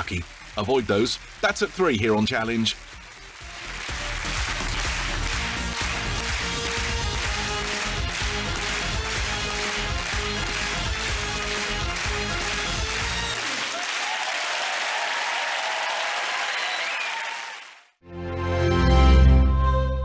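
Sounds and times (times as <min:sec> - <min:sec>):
closing theme music: 0:00.0 - 0:13.7, 0:18.0 - 0:20.0
studio audience applauding: 0:00.0 - 0:18.0.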